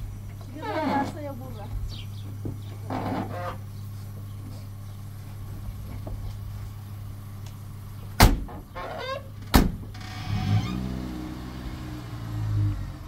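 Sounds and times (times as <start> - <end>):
car doors slamming: 8.2 - 8.7, 9.4 - 10.0
engine starting and running: 9.8 - 13.0.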